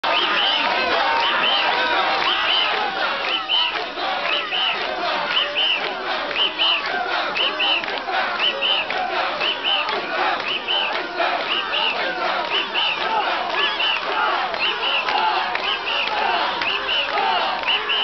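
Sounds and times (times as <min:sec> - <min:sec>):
crowd chanting and shouting: 0:00.0 - 0:18.0.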